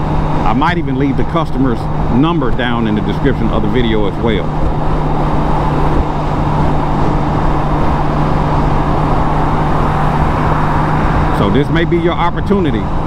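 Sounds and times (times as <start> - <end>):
motorcycle engine drone: 0.0 - 13.0
wind and road noise: 0.0 - 13.0.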